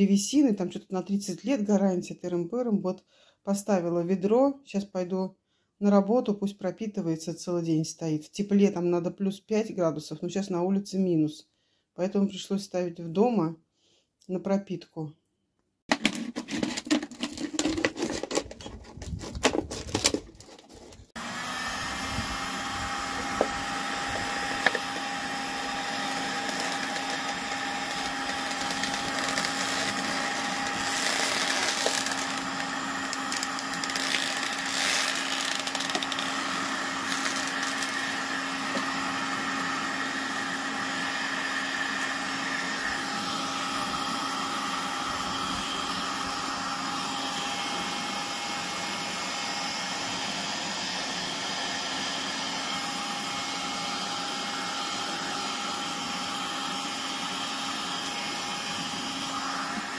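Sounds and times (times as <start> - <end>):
heat gun fan humming: 20.6 - 59.9.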